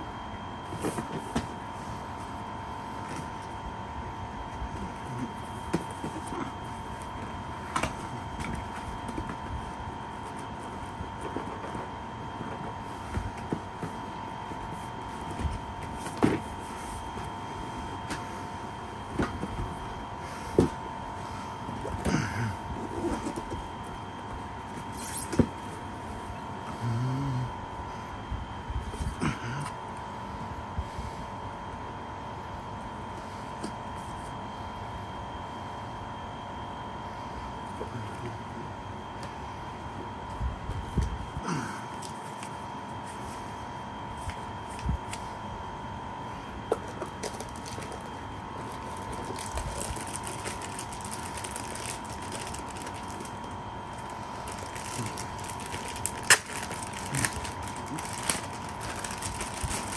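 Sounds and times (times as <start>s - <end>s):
box and packaging handled: 4.6s - 17.4s, 46.7s - 59.9s
packaging crackling and clicking: 47.1s - 59.9s.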